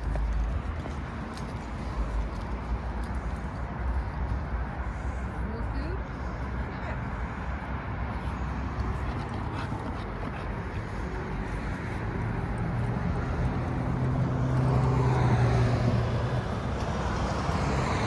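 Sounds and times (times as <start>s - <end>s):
outdoor background noise: 0.0s - 18.0s
vehicle engine passing by: 7.2s - 18.0s.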